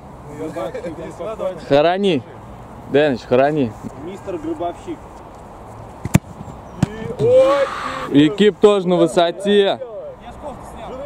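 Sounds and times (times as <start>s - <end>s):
ball knock: 6.0s - 7.1s
boot kicking football: 6.0s - 7.3s
man shouting: 7.0s - 8.3s.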